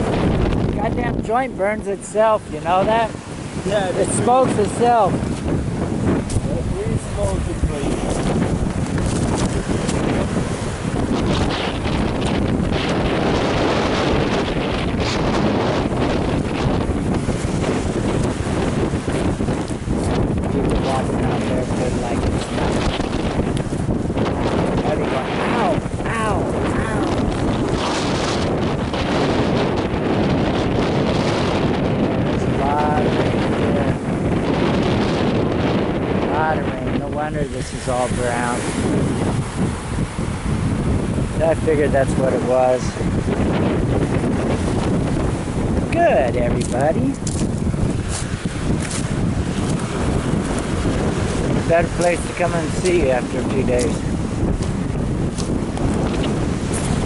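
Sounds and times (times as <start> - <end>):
surf on pebble beach: 0.0 - 57.0
wind buffeting microphone: 0.0 - 57.0.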